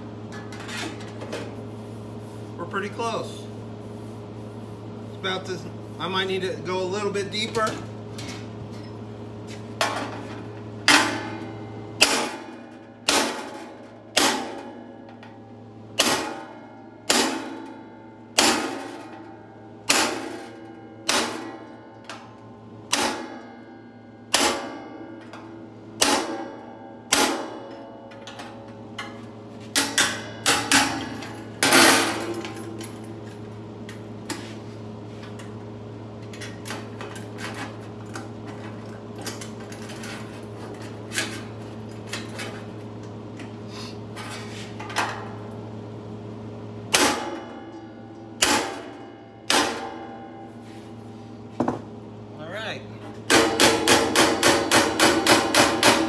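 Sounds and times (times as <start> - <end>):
hammer striking metal tool: 53.3 - 56.0.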